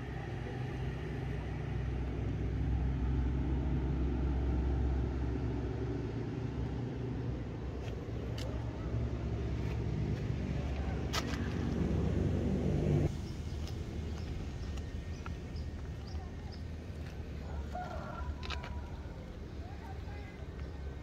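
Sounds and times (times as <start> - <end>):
loud engine drone: 0.0 - 7.8, 8.8 - 13.2.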